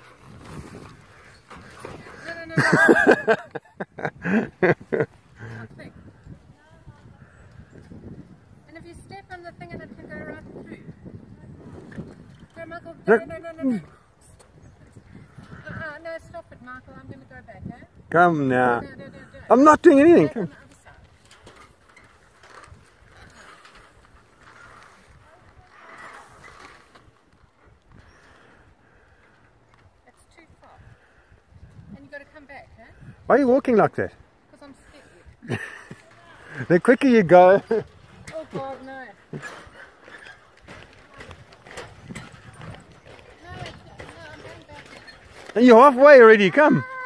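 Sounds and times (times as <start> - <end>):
footsteps on wooden planks: 37.9 - 45.6.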